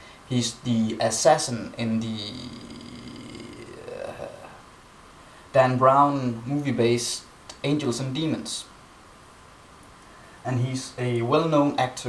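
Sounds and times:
man saying uh: 0:00.3 - 0:04.6.

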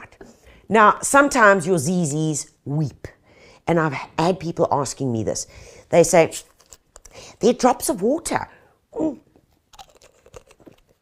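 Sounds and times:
person saying ooh: 0:08.9 - 0:09.3.

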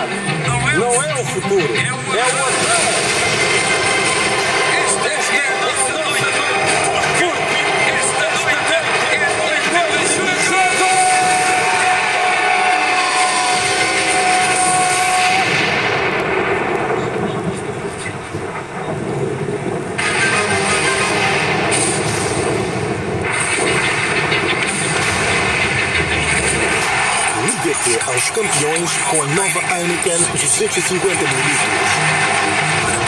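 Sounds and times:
commercial music: 0:00.0 - 0:17.4, 0:18.6 - 0:33.0
dense wash of noise: 0:00.0 - 0:33.0.

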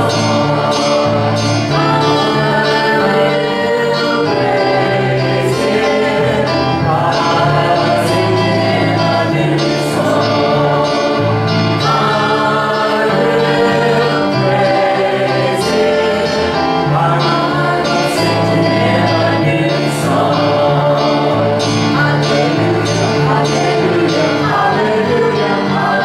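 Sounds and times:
group singing gospel song: 0:00.0 - 0:26.0
instrumental accompaniment: 0:00.0 - 0:26.0.

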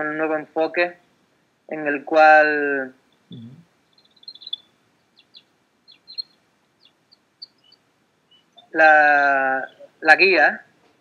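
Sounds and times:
birds chirping: 0:02.6 - 0:11.0.

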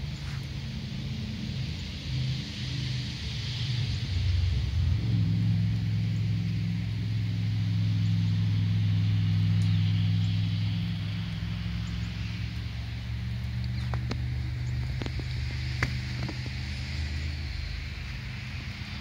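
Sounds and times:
faint hiss: 0:00.0 - 0:19.0
low mechanical hum: 0:00.0 - 0:19.0.

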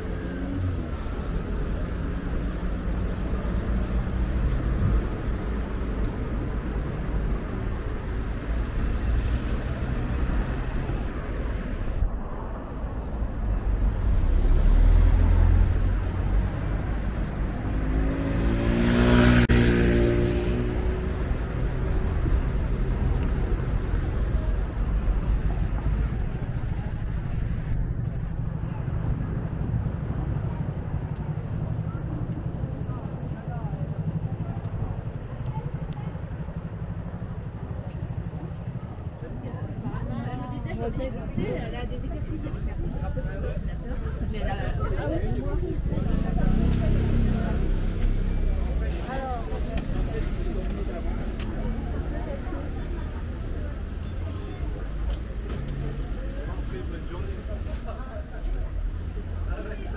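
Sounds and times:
passing cars rumble: 0:00.0 - 0:59.9
heavy vehicle passing: 0:07.4 - 0:36.1
vehicle passing close: 0:13.7 - 0:22.0.

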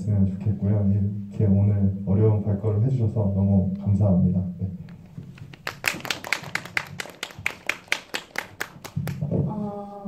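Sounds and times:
audience clapping: 0:05.2 - 0:09.3.

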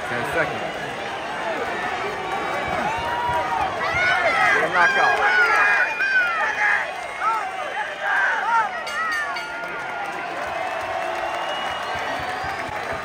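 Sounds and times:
crowd murmur: 0:00.0 - 0:13.0
voices shouting: 0:00.0 - 0:13.0.

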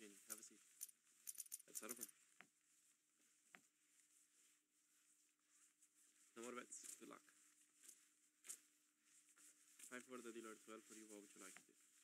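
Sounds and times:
casino chips clinking: 0:00.3 - 0:02.1.

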